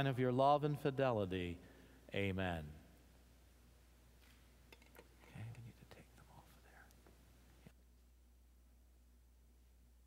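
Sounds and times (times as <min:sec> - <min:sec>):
faint whispering: 0:05.2 - 0:07.1.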